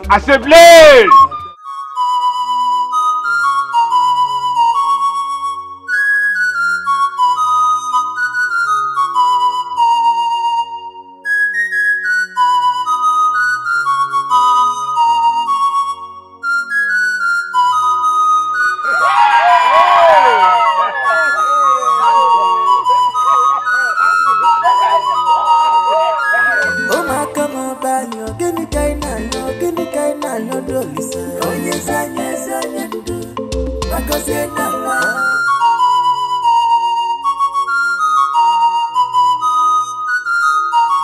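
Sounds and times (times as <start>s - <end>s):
flute melody: 0.2s - 33.2s, 33.9s - 41.0s
loud wavering voice: 18.8s - 27.1s.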